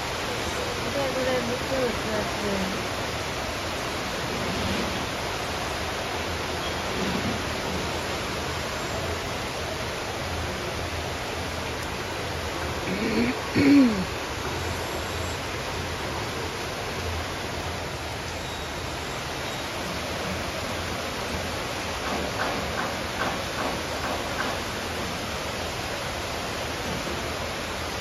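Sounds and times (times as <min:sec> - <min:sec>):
heavy rain: 0:00.0 - 0:28.0.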